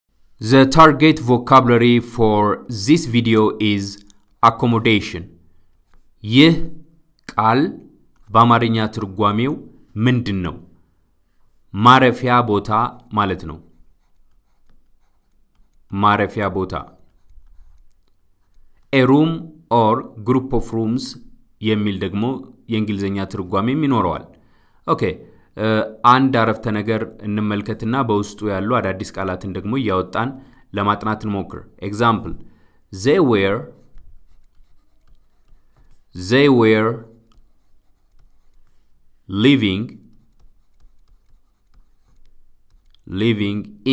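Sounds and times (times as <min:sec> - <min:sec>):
stylus scratching on tablet: 0:11.6 - 0:19.1, 0:33.2 - 0:43.4.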